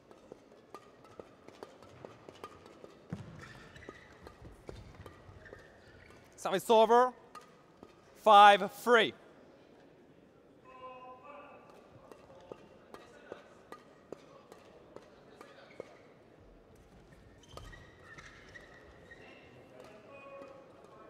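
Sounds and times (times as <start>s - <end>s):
racket striking shuttlecock: 0.1s - 5.2s.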